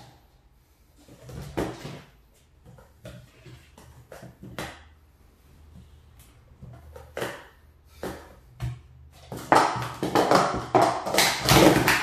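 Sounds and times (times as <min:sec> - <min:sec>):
hands knocking on plastic cups: 0:06.9 - 0:12.0.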